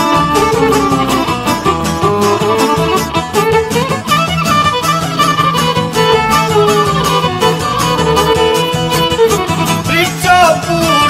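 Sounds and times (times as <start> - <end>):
fiddle melody with vibrato: 0.0 - 11.0
string and bass accompaniment: 0.0 - 11.0.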